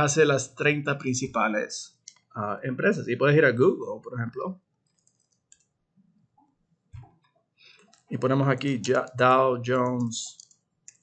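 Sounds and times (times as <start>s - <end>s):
keyboard and mouse clicks: 2.0s - 2.3s, 4.8s - 5.8s, 6.4s - 11.0s.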